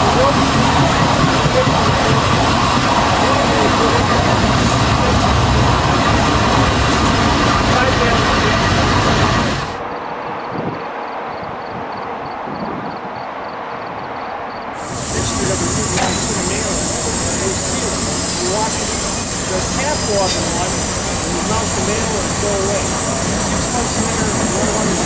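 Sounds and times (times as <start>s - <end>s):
steam locomotive hissing steam: 0.0s - 9.8s, 14.8s - 25.0s.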